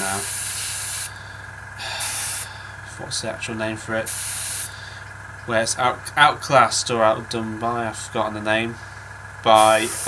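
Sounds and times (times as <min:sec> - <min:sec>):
airbrush spraying hiss: 0:00.0 - 0:01.2, 0:01.8 - 0:02.5, 0:04.1 - 0:04.7, 0:09.6 - 0:10.0.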